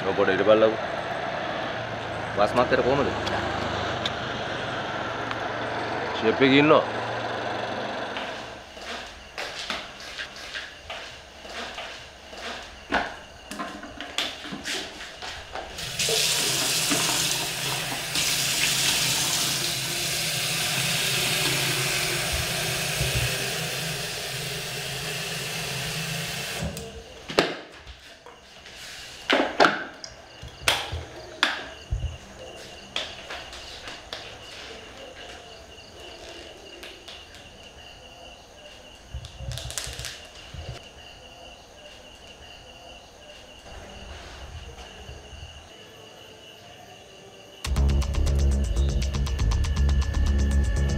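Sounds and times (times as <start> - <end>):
tap water running into kettle: 15.8 - 26.8.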